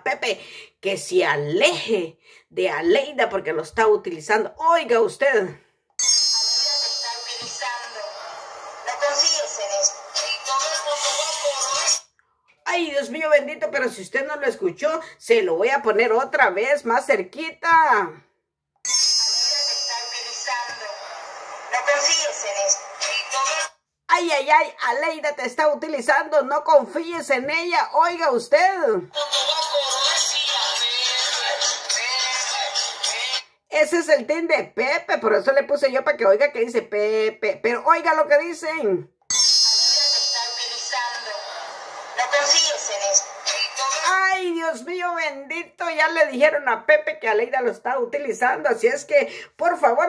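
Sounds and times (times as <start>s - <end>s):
high steady tone: 6.0s - 10.4s, 18.9s - 22.4s, 39.3s - 44.1s.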